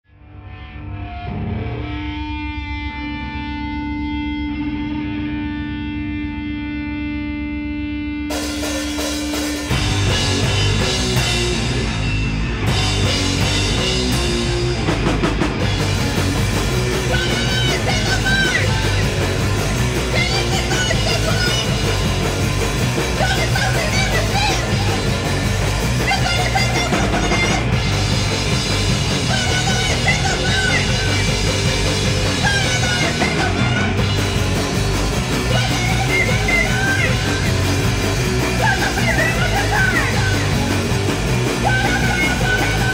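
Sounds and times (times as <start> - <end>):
sustained electric guitar tone: 0.1 - 42.9
punk band playing loudly: 8.3 - 42.9.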